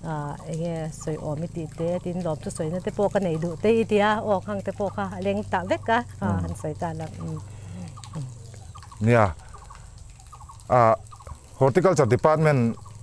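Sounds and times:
fowl calling: 0:06.2 - 0:11.4.

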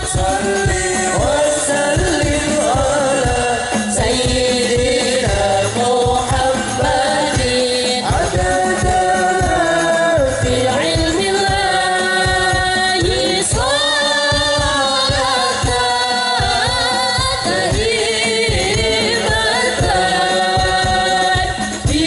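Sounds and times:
woman singing devotional song: 0:00.0 - 0:22.0.

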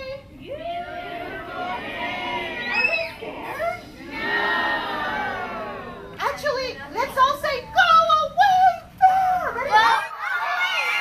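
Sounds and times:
children and adults calling out: 0:00.0 - 0:06.0.

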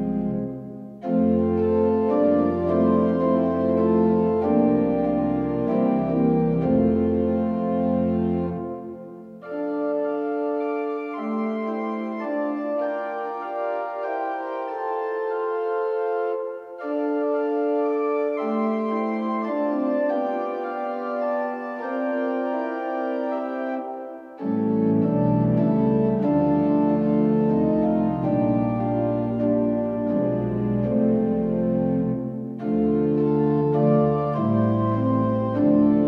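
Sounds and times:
deep organ pedal bass: 0:00.0 - 0:16.1, 0:24.4 - 0:36.0
organ playing held chords: 0:00.0 - 0:36.0.

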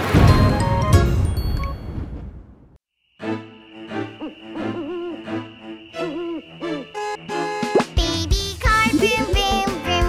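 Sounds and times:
swooping hoot-like glides: 0:03.3 - 0:08.2.

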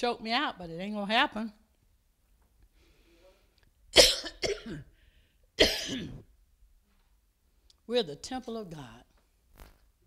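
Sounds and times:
woman coughing: 0:04.0 - 0:04.9, 0:05.6 - 0:06.3.

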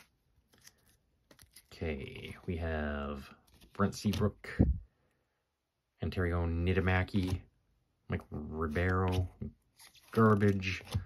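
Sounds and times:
man speaking: 0:01.7 - 0:04.8, 0:06.0 - 0:07.5.

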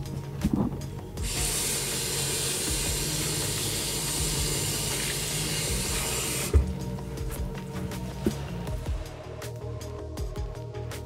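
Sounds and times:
tap water running into basin: 0:01.2 - 0:06.8
hands being rinsed under water: 0:01.2 - 0:06.9.

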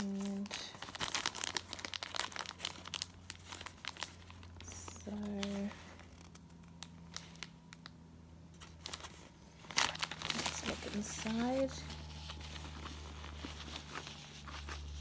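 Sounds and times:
plastic wrapping crinkling: 0:00.0 - 0:15.0.

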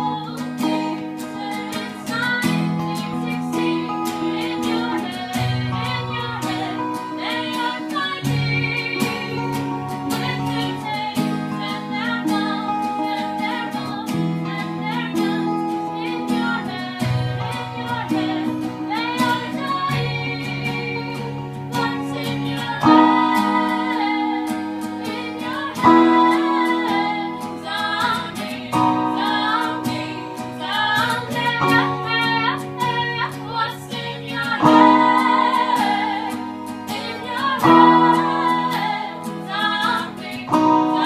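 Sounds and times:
acoustic guitars strumming: 0:00.0 - 0:41.0
person singing: 0:00.0 - 0:41.0.

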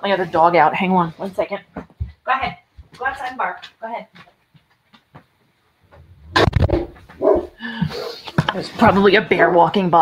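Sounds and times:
dog barking: 0:07.2 - 0:07.6.

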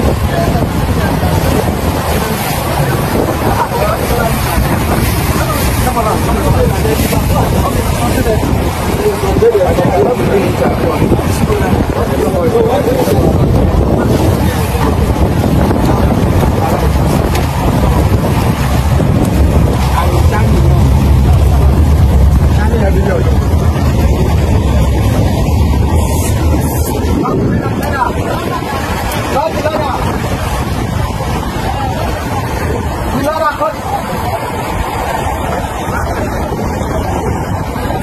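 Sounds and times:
speedboat engine running: 0:00.0 - 0:38.0
water rushing past hull: 0:00.0 - 0:38.0
wind buffeting microphone: 0:00.0 - 0:38.0.

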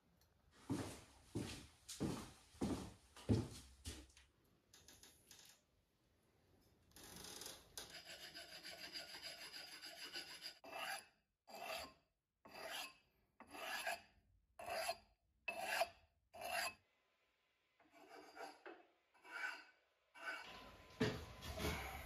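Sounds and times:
ceramic tile scraping on abrasive: 0:07.0 - 0:16.8, 0:17.8 - 0:20.9.

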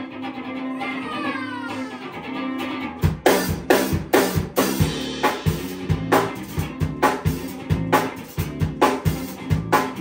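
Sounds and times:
drum kit kick and snare beat: 0:02.8 - 0:10.0.

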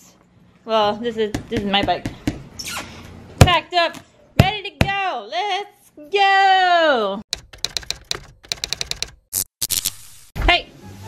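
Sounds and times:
typewriter key clacks: 0:07.4 - 0:09.2.

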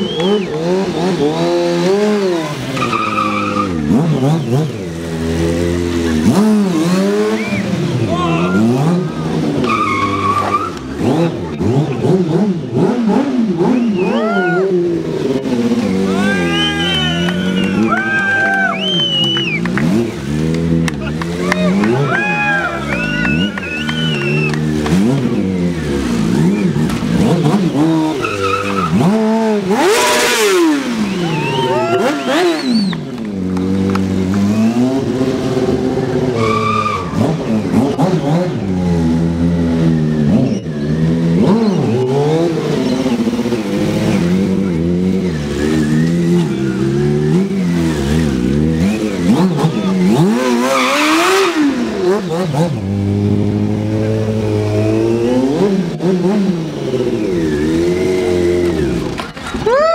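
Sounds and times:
motorbike engine revving: 0:00.0 - 0:59.9
tyre squeal: 0:02.3 - 0:04.6, 0:09.6 - 0:10.9, 0:27.7 - 0:29.2, 0:30.0 - 0:33.1, 0:36.3 - 0:37.4, 0:40.0 - 0:43.5.

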